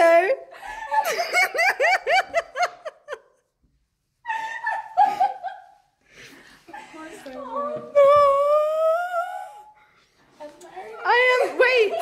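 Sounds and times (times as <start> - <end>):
young woman laughing: 4.2 - 5.8.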